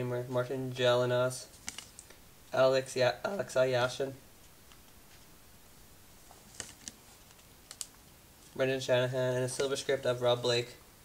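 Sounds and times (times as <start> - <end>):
cards clicking while flipped: 1.6 - 2.2, 6.4 - 8.0.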